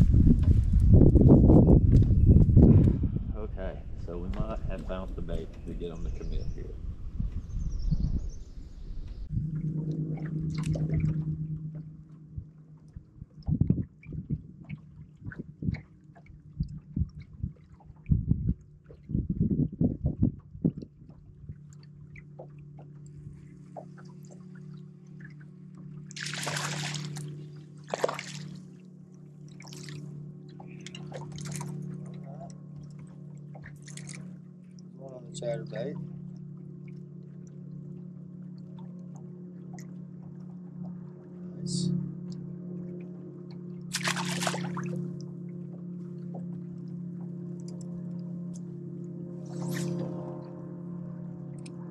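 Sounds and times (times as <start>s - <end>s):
electric trolling motor humming: 0.0s - 51.9s
water splashes: 9.2s - 50.9s.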